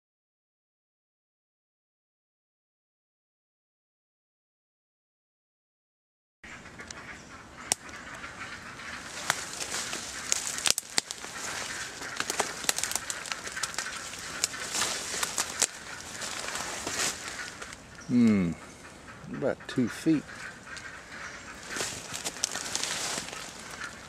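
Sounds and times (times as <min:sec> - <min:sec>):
brush rustling and crackling: 0:06.7 - 0:18.0, 0:20.2 - 0:24.0
twigs snapping: 0:07.6 - 0:08.3, 0:08.9 - 0:17.8, 0:20.4 - 0:24.0.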